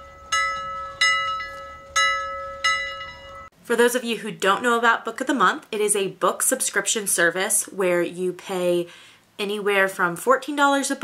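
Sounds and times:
bell-like chime notes: 0:00.0 - 0:03.5
steady held tone: 0:00.0 - 0:03.5.

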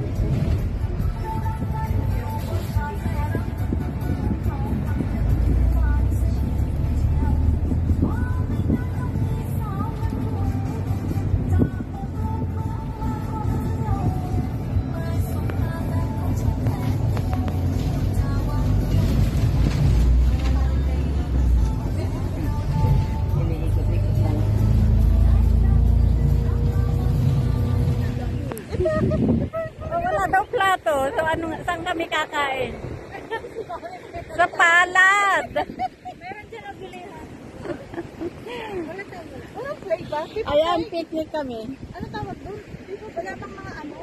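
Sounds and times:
music: 0:00.0 - 0:20.1, 0:20.8 - 0:28.2
engine and road rumble: 0:00.0 - 0:44.0.

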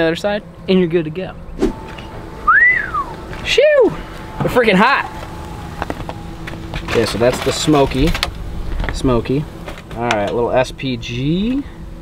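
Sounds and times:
person whistling: 0:02.4 - 0:03.2.

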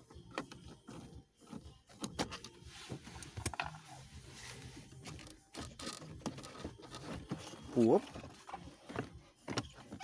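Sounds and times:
plastic and metal clicks and scrapes: 0:04.8 - 0:10.0.

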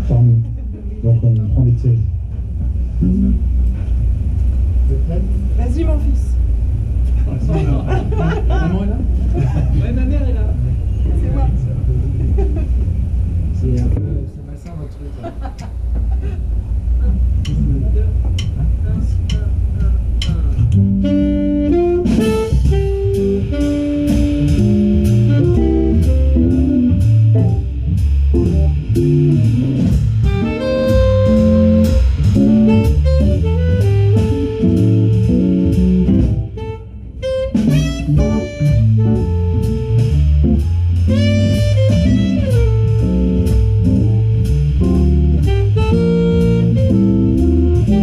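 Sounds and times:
low rumble: 0:00.0 - 0:48.0
drums: 0:02.0 - 0:14.0, 0:15.2 - 0:48.0
jazz band playing: 0:02.3 - 0:05.7, 0:17.0 - 0:48.0.

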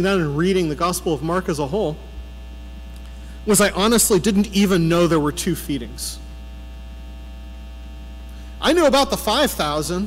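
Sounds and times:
faint higher hum tones: 0:00.0 - 0:10.0
low electrical mains hum: 0:00.0 - 0:10.0.

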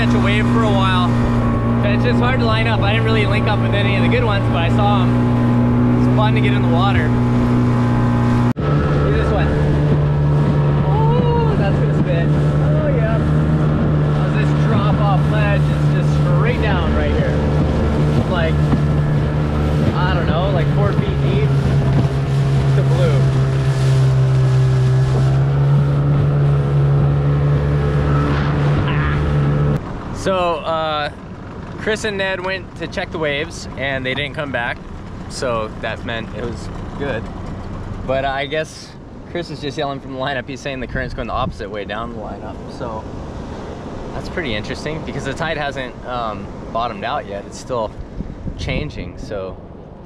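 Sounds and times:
wind rushing: 0:00.0 - 0:29.8, 0:47.8 - 0:49.2
outboard motor running: 0:00.0 - 0:47.2
water rushing past: 0:00.0 - 0:49.9.

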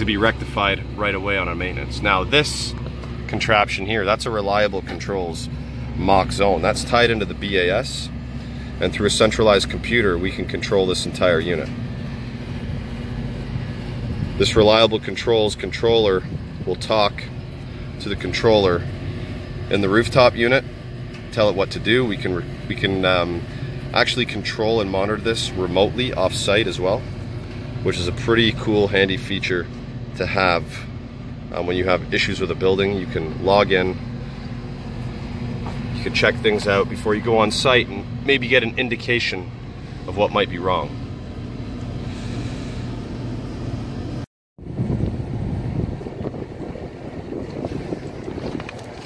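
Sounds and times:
hvac equipment humming: 0:00.0 - 0:49.0.

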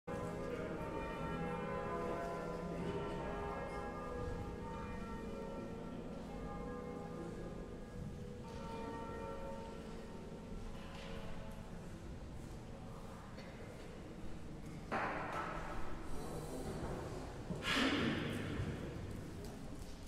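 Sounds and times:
church bells ringing: 0:00.1 - 0:11.2.

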